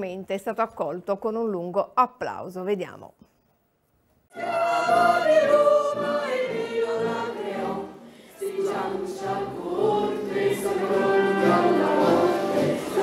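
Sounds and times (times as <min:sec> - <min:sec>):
crowd singing in unison: 0:04.3 - 0:13.0.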